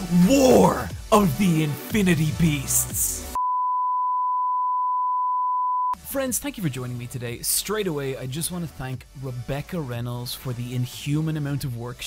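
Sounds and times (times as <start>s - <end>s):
steady electronic beep: 3.4s - 6.0s.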